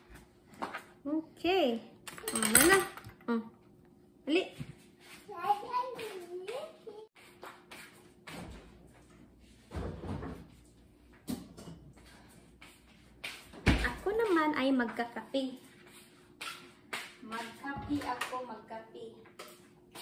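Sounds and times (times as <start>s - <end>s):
kitchen things clattering: 2.0s - 3.2s.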